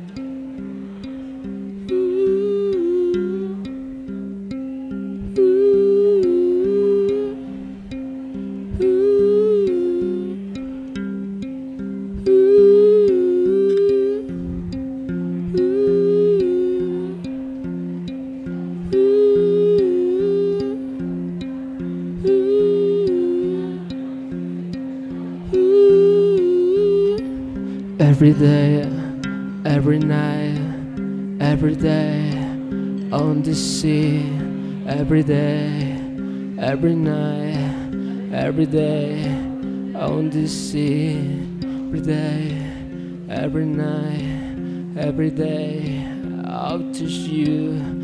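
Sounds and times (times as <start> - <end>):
man humming: 5.3 - 7.6, 8.8 - 10.5, 12.2 - 17.4, 18.7 - 21.6, 22.2 - 23.8, 25.3 - 48.0
wordless humming voice: 15.5 - 17.3, 18.7 - 20.8, 22.2 - 24.2, 25.2 - 27.3.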